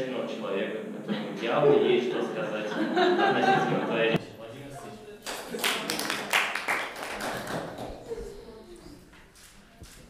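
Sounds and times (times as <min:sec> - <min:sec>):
audience clapping: 0:05.2 - 0:08.2.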